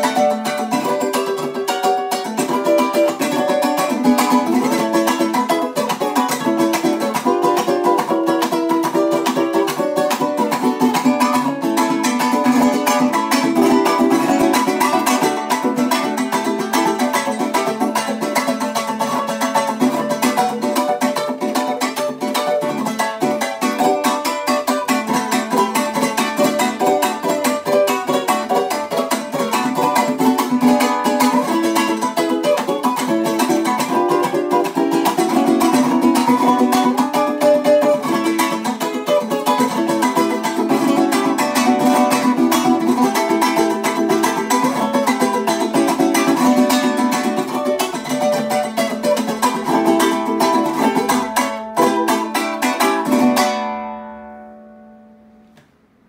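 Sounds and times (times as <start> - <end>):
strummed string instrument: 0.0 - 56.0.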